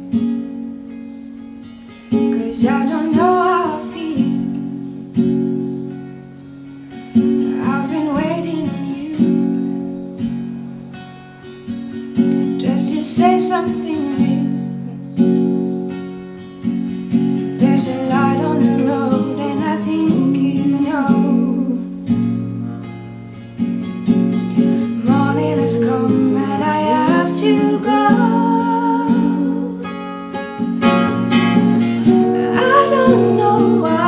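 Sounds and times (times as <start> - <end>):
acoustic guitar strumming: 0.0 - 34.0
woman and man singing duet: 2.3 - 5.0, 7.4 - 9.6, 12.6 - 14.8, 17.6 - 22.1, 25.0 - 30.3, 32.0 - 34.0.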